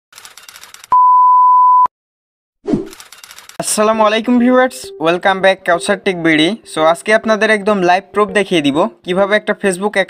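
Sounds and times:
electronic beep: 0.9s - 1.9s.

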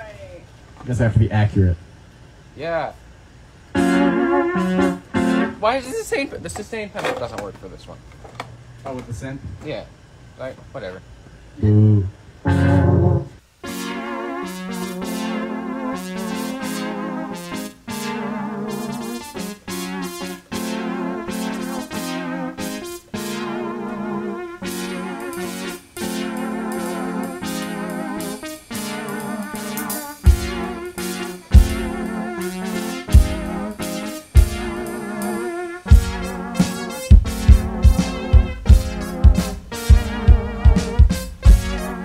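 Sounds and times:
electric keyboard chords: 3.7s - 6.7s, 11.6s - 42.0s.

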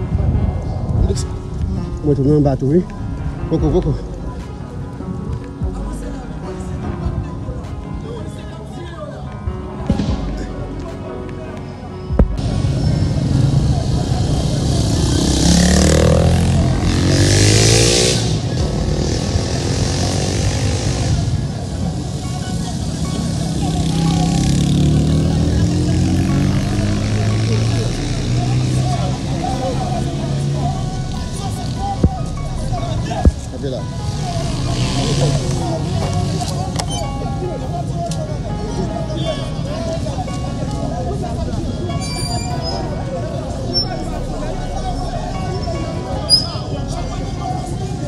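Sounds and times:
motorcycle engines revving: 12.3s - 48.0s.

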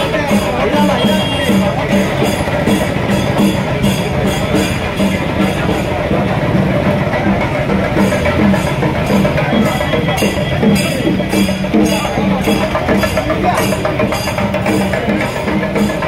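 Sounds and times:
crowd noise: 0.0s - 16.0s
street drumming steady beat: 0.0s - 16.0s.

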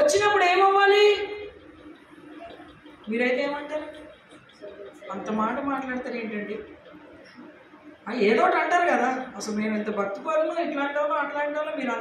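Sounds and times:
woman's voice over loudspeaker: 0.0s - 1.6s, 3.0s - 4.1s, 4.7s - 6.8s, 8.0s - 12.0s.

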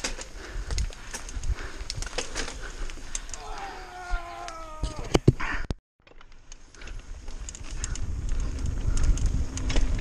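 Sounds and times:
bike knocking and rattling: 0.0s - 10.0s.

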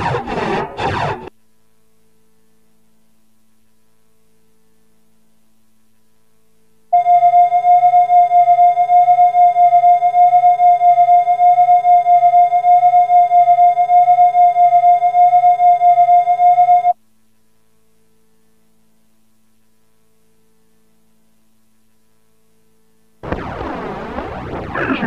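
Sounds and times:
faint hum: 0.0s - 25.0s
electronic test tone: 6.9s - 17.0s.

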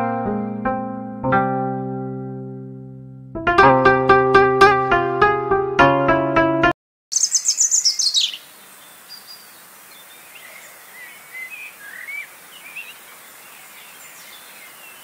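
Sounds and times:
birds chirping: 7.1s - 15.0s
bird whistles: 7.2s - 8.4s, 11.0s - 13.0s.

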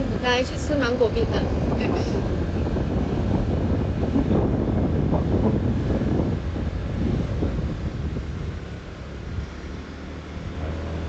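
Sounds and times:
road noise: 0.0s - 11.0s
wind buffeting microphone: 0.0s - 11.0s.

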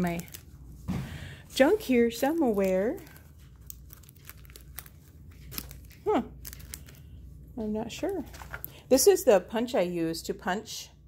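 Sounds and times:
paper packets rustling: 0.0s - 9.2s.

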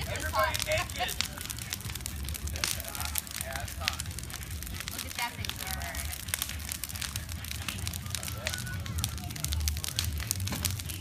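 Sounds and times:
bonfire crackling and popping: 0.0s - 11.0s
low rumble of flames: 0.0s - 11.0s.

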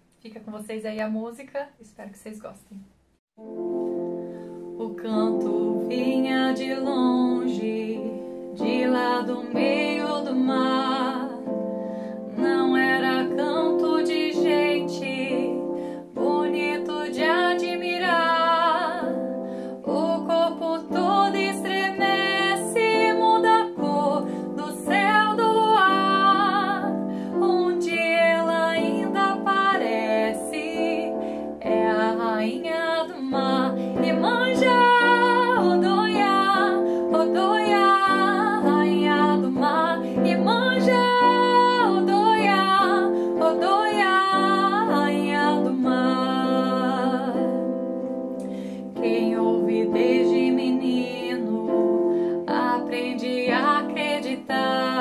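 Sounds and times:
soft instrumental chords: 3.4s - 55.0s
woman singing with vibrato: 4.6s - 11.7s, 12.3s - 47.8s, 48.8s - 55.0s.

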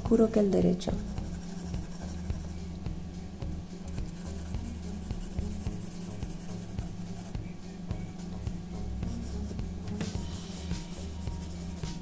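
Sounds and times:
background music: 0.0s - 12.0s
pencil scratching on paper: 1.0s - 2.5s, 4.0s - 7.4s, 9.1s - 12.0s.

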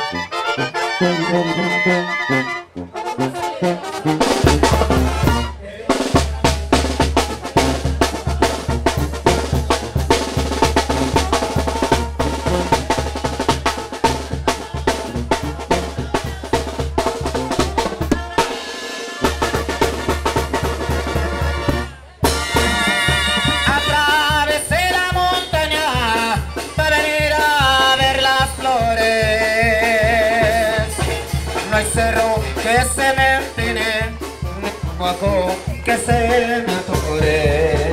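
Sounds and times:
brass band music: 0.0s - 37.9s
bass drum and snare beat: 4.0s - 37.9s.

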